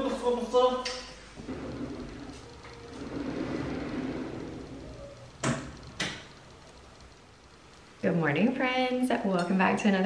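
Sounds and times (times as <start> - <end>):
sliding door rumbling: 1.4 - 6.2.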